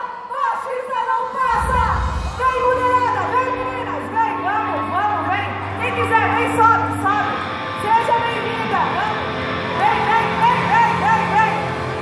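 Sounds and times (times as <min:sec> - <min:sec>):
steady low stage tones: 0:01.3 - 0:12.0.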